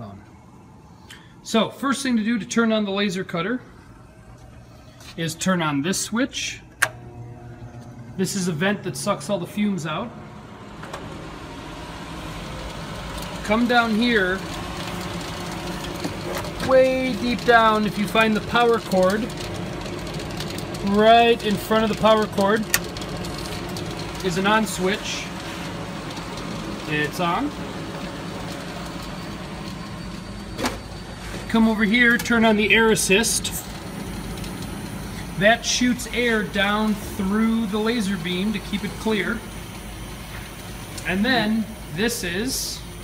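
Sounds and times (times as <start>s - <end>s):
blower rushing air with hum: 0.4s - 43.0s.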